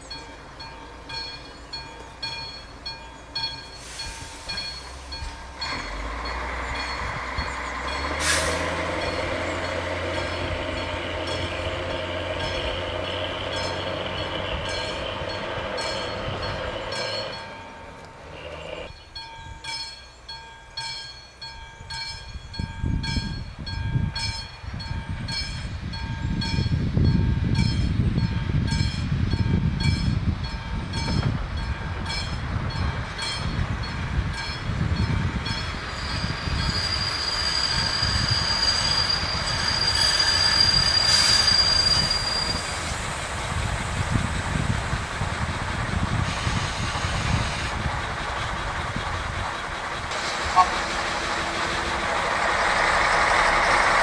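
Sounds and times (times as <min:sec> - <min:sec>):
railcar rumbling: 0:00.0 - 0:54.0
high steady squeal: 0:35.6 - 0:44.4.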